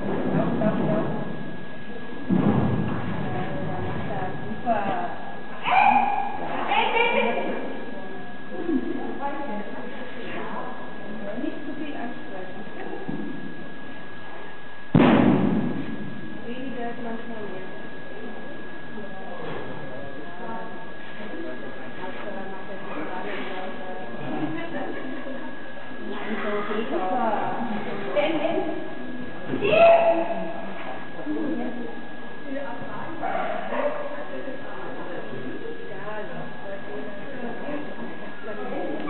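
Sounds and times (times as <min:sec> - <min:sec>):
background talk: 0:00.0 - 0:14.9, 0:15.6 - 0:39.0
loud thud echoing in hall: 0:02.3 - 0:03.8, 0:14.9 - 0:16.2.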